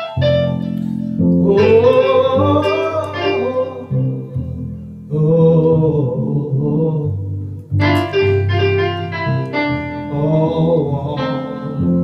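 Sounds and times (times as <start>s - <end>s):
electronic keyboard chords: 0.0s - 12.0s
man singing a held note: 1.4s - 7.2s.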